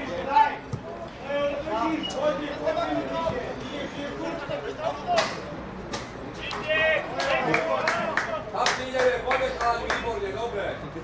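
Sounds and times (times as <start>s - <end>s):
voices shouting: 6.3s - 8.4s.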